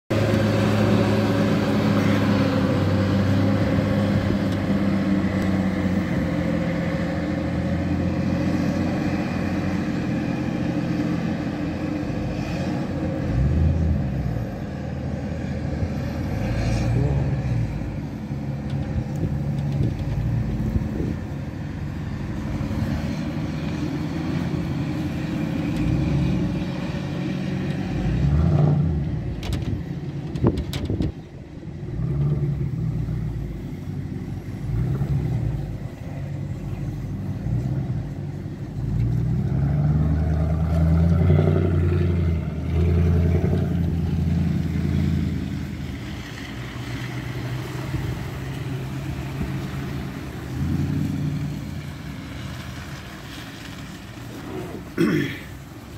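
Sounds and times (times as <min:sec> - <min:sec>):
car engines passing: 0:00.1 - 0:55.9
diesel engine of wheel loader: 0:00.1 - 0:55.9.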